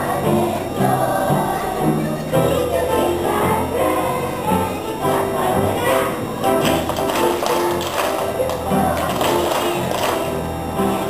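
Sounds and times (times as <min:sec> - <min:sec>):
music playing: 0:00.0 - 0:11.0
children clapping in time: 0:06.6 - 0:10.4.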